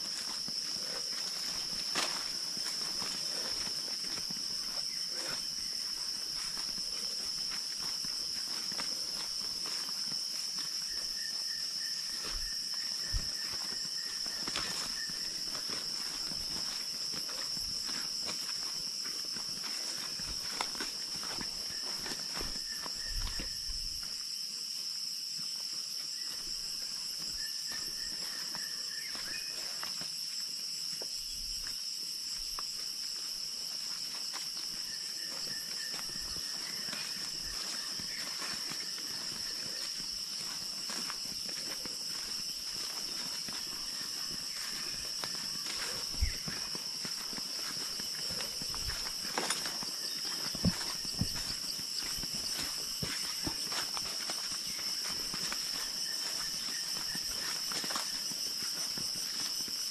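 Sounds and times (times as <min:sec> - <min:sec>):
footsteps on leafy dirt trail: 0:00.0 - 0:24.5, 0:25.5 - 0:59.9
forest insects droning: 0:00.0 - 0:59.9.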